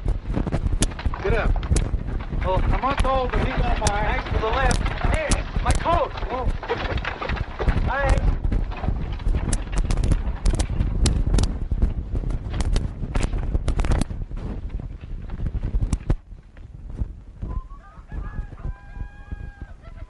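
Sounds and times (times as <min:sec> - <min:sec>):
horse-drawn wagon clattering: 0:00.5 - 0:16.1.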